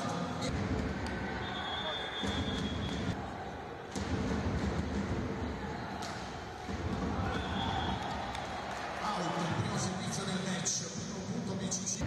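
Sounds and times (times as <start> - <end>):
crowd noise: 0.0 - 12.0
referee whistle blast: 1.4 - 3.1, 7.3 - 8.0.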